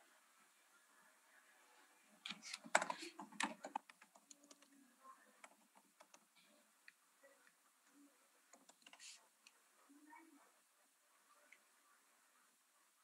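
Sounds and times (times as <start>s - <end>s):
faint typing on keyboard: 2.1s - 10.6s.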